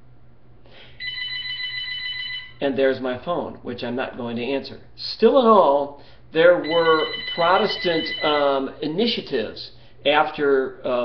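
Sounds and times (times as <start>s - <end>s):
telephone ringing: 1.0s - 2.6s, 6.6s - 8.7s.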